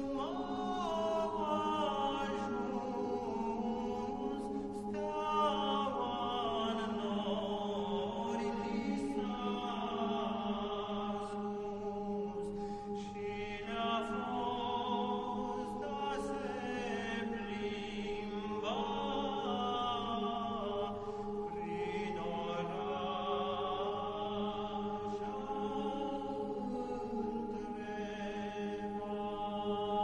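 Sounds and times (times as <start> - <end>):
group of voices singing a carol: 0.0 - 30.0.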